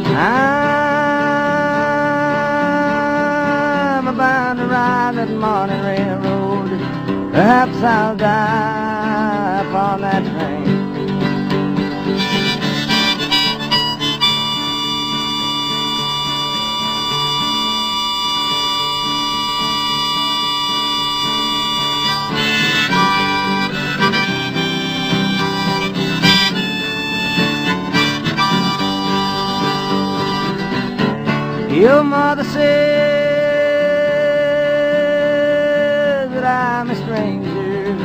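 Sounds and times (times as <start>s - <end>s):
strummed acoustic guitar: 0.0s - 38.0s
harmonica solo: 11.8s - 32.0s.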